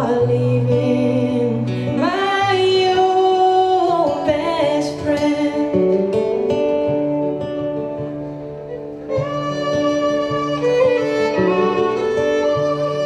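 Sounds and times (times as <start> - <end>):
woman singing: 0.0 - 6.4
plucked string accompaniment: 0.0 - 13.0.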